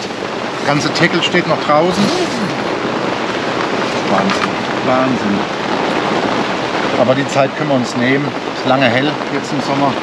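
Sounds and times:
heavy rain on a tent: 0.0 - 10.0.

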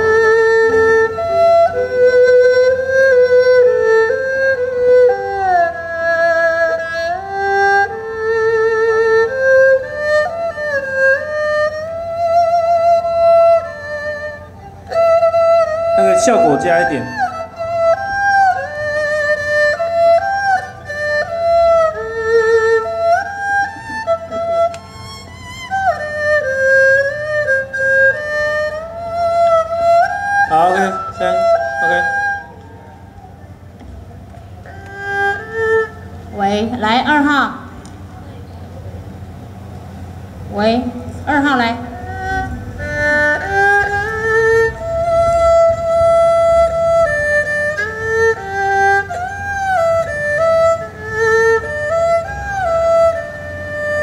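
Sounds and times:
erhu melody through speakers: 0.0 - 54.0.

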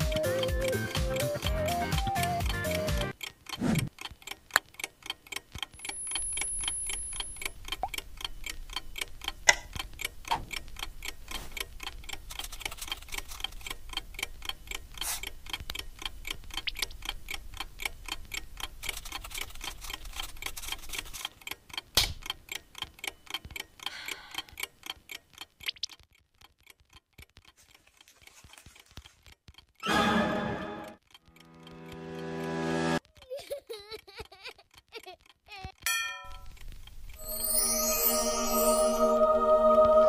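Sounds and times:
clock ticking: 0.0 - 29.8, 30.8 - 37.6.

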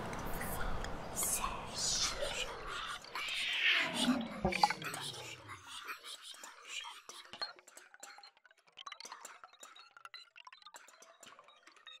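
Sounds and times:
whispered voice sounds: 0.1 - 7.4.

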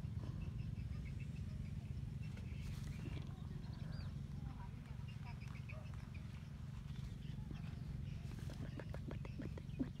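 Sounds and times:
steady low rumble: 0.0 - 10.0
wet clicking mouth sounds: 8.5 - 10.0.

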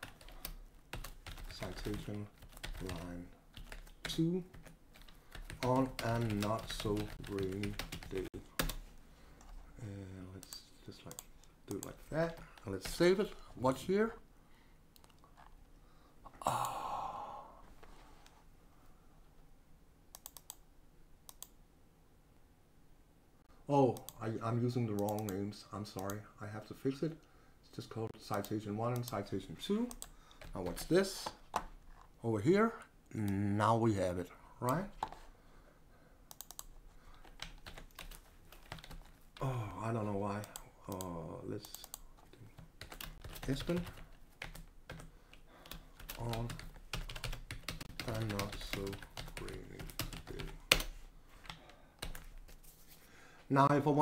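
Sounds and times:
man sighing: 16.2 - 17.8, 39.4 - 39.9.

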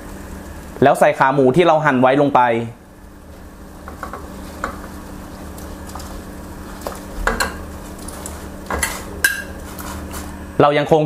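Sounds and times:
low hum of boiling and stove: 0.0 - 11.0.

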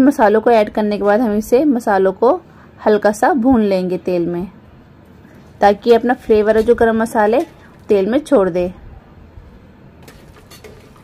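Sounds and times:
metal spoon scraping pot: 5.7 - 7.8, 10.0 - 11.0.

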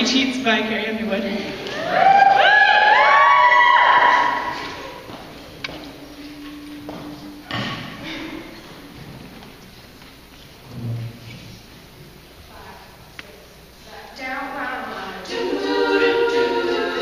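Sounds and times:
women singing a cappella chord: 13.8 - 17.0.

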